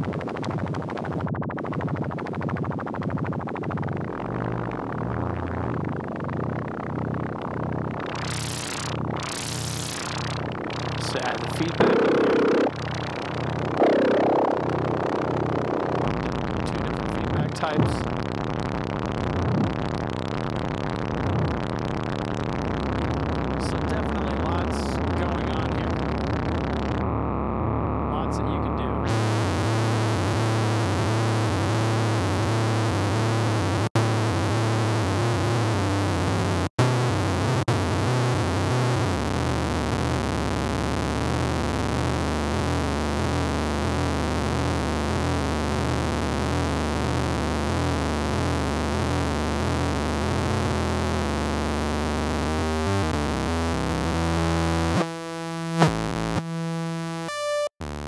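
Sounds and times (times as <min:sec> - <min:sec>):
low modulated synthesizer tone: 0:00.0 - 0:58.0.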